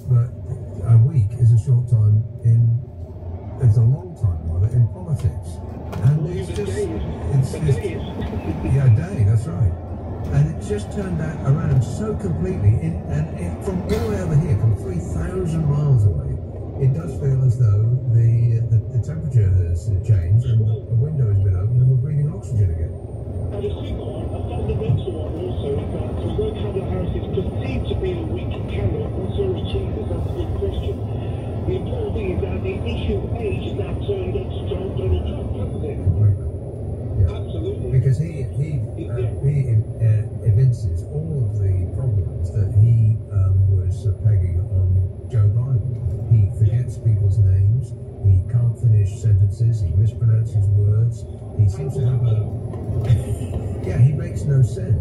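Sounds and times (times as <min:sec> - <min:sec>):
road and engine rumble: 0:00.0 - 0:55.0
unclear voices: 0:03.6 - 0:55.0.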